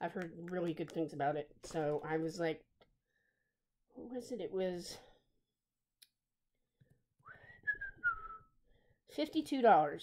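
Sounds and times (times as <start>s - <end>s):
woman whistling a sliding note: 7.2s - 8.6s.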